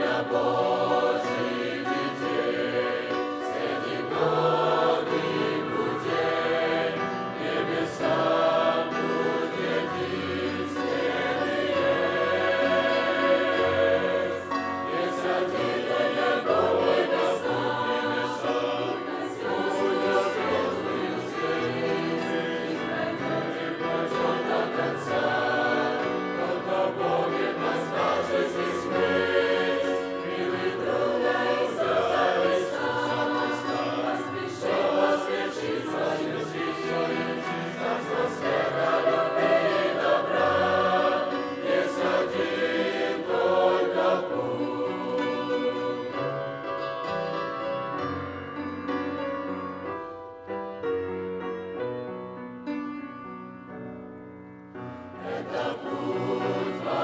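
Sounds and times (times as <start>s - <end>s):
choir singing a christian song: 0.0s - 48.3s, 54.8s - 57.0s.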